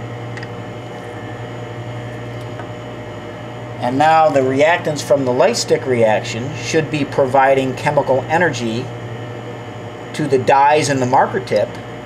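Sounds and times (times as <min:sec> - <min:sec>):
low mechanical hum: 0:00.0 - 0:12.0.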